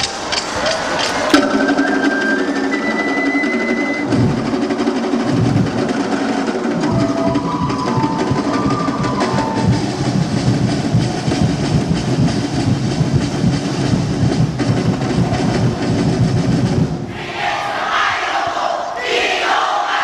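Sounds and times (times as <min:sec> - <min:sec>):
drum and percussion ensemble: 0:00.0 - 0:18.3
high held tone: 0:01.4 - 0:04.9.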